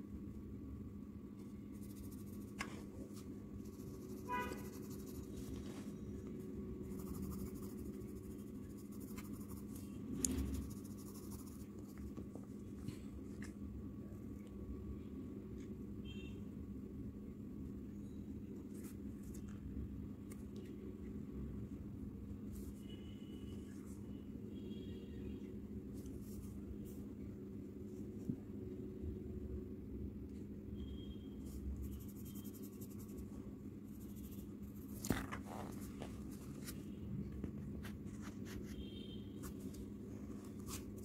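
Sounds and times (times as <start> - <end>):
steady low hum: 0.0 - 41.0
pencil scratching on paper: 1.8 - 2.7, 3.6 - 5.7, 6.9 - 9.8, 10.4 - 11.7.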